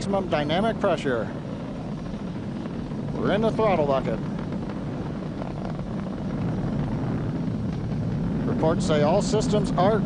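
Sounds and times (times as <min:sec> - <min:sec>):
distant rocket engine rumble: 0:00.0 - 0:10.0.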